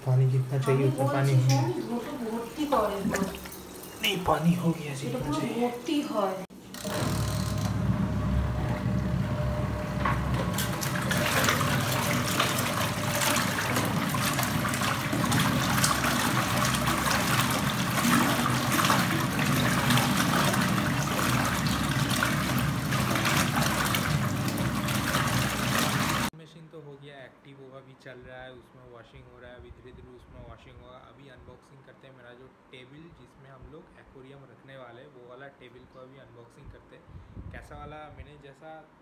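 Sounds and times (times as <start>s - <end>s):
washing machine motor humming: 0.0s - 26.3s
water and clothes swirling: 0.6s - 6.4s, 10.2s - 26.3s.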